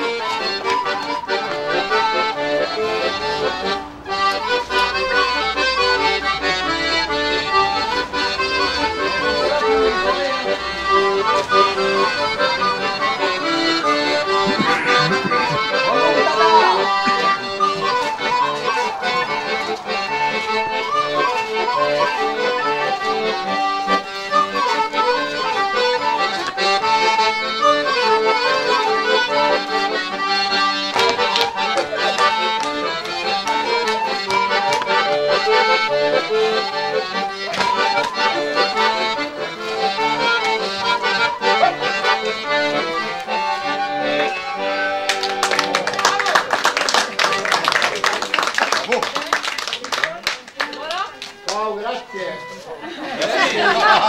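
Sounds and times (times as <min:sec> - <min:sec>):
accordion folk dance tune: 0:00.0 - 0:54.0.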